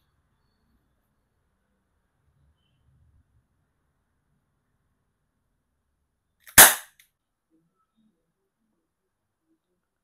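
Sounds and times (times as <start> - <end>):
air revolver shot: 6.5 - 6.9.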